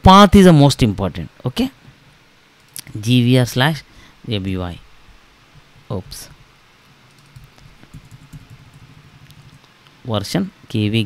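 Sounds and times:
low steady hum: 0:00.0 - 0:11.0
faint keyboard keystrokes: 0:07.1 - 0:09.8.

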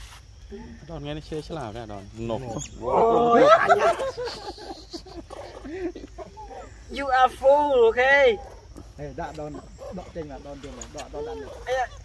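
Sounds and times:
man laughing loudly: 0:03.0 - 0:06.6.

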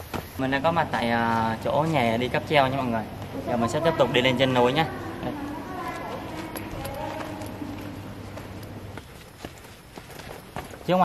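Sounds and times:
footsteps on outdoor steps: 0:00.0 - 0:04.1, 0:05.2 - 0:11.0
faint murmuring voices: 0:03.2 - 0:08.8.

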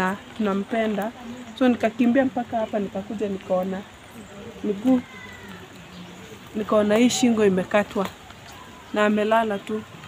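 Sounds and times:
woman speaking: 0:06.5 - 0:08.2, 0:08.9 - 0:09.9.

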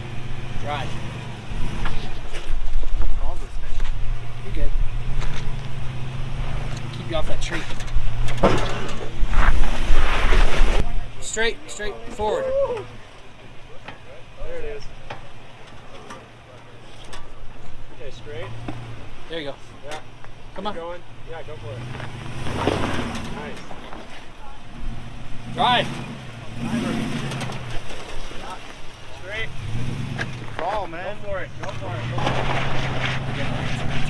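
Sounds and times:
engine pulling over rocks: 0:01.6 - 0:11.0, 0:21.4 - 0:34.0
faint voices: 0:10.7 - 0:21.9.

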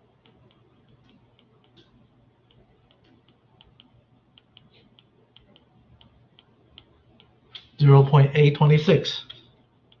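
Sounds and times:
stylus tapping on tablet screen: 0:00.0 - 0:07.7, 0:09.3 - 0:10.0.

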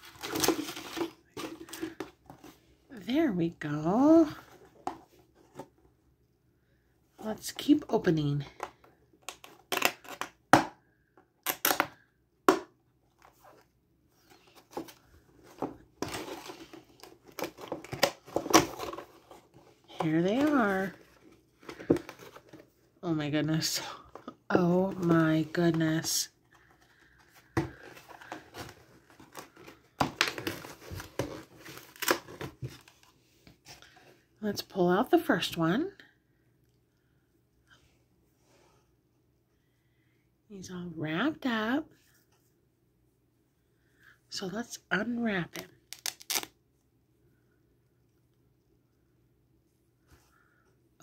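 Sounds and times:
cardboard rustling and scraping: 0:00.0 - 0:02.8, 0:13.2 - 0:23.0.

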